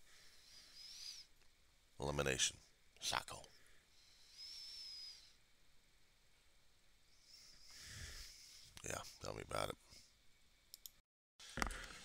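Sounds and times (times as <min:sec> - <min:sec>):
faint hiss: 0:00.0 - 0:10.6.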